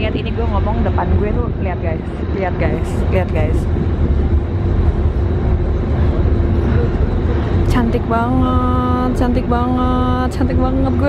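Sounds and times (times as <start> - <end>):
faint constant hum: 0.0 - 11.0
ferry engines rumbling: 0.0 - 11.0.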